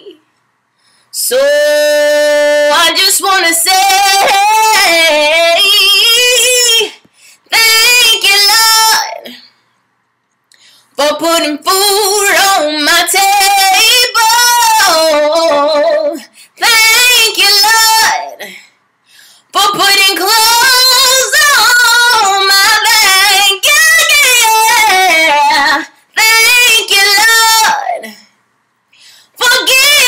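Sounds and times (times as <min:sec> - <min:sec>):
breaths: 0:00.3 - 0:01.2, 0:07.0 - 0:07.5, 0:09.2 - 0:09.9, 0:10.5 - 0:11.0, 0:16.2 - 0:16.6, 0:18.4 - 0:19.6, 0:28.0 - 0:29.4
woman singing unaccompanied: 0:01.2 - 0:09.4, 0:11.0 - 0:18.6, 0:19.5 - 0:28.3, 0:29.4 - 0:30.0.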